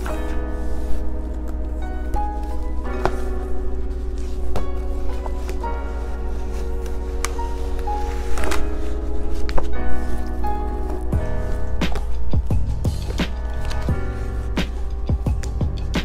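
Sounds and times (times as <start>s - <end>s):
background music of held chords: 0.0s - 16.0s
plastic folder and paper taps: 7.2s - 8.7s.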